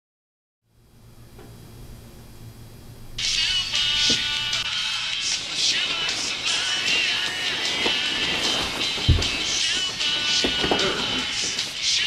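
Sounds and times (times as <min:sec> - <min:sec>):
music: 0:03.1 - 0:12.0.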